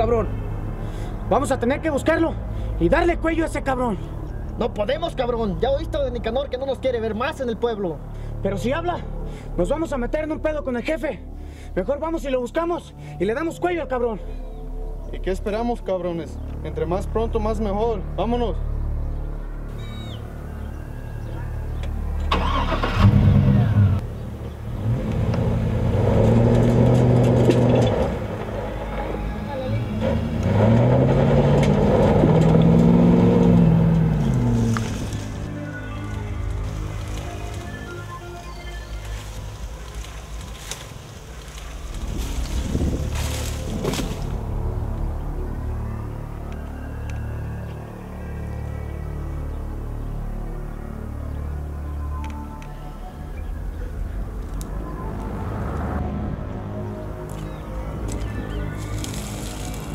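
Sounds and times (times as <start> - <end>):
film background music: 0.0 - 59.9
car engine revving: 22.2 - 35.5.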